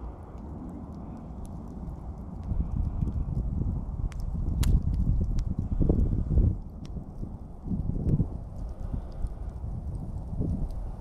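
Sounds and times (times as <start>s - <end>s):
campfire crackles: 0.0s - 11.0s
low rumble: 0.0s - 11.0s.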